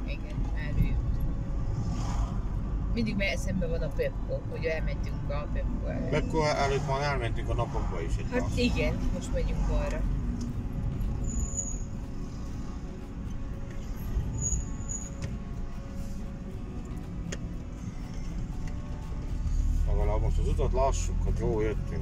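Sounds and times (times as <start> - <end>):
car road and engine rumble: 0.0 - 22.0.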